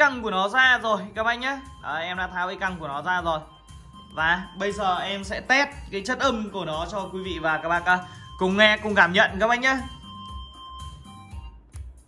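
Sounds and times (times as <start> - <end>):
instrumental music on loudspeakers: 0.0 - 12.0
soft bass beat: 0.0 - 12.0.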